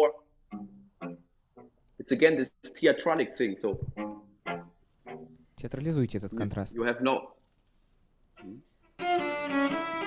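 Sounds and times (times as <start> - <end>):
soft cello notes: 8.4 - 10.0.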